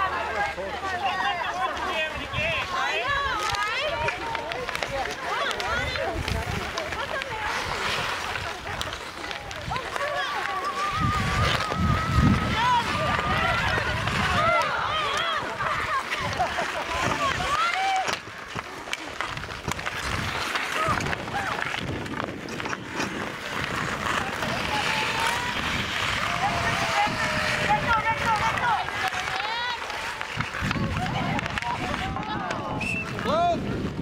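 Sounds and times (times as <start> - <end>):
skate blades scraping ice: 0.0 - 34.0
hockey sticks clacking: 0.1 - 34.0
people shouting: 9.8 - 16.3, 17.1 - 18.2, 23.8 - 33.2.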